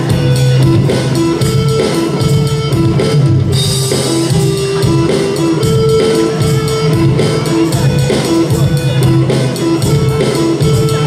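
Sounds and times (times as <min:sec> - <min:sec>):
electric and acoustic guitars: 0:00.0 - 0:11.0
keyboard: 0:00.0 - 0:11.0
live band playing a song: 0:00.0 - 0:11.0.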